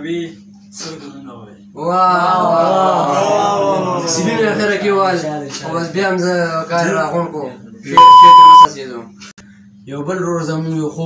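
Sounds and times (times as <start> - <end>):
high censor bleep tone: 8.0 - 8.7.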